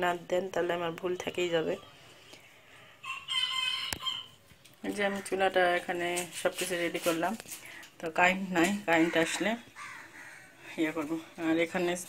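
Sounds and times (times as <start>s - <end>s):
rooster crowing: 3.0s - 4.4s.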